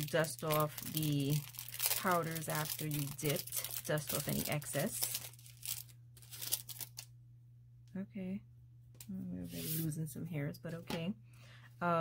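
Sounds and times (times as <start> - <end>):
plastic sleeve crinkling: 0.0 - 7.1.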